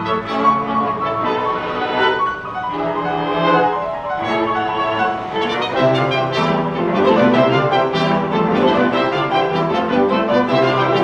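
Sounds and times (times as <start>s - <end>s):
trumpet: 0.0s - 2.3s, 4.2s - 11.0s
bowed strings: 0.0s - 11.0s.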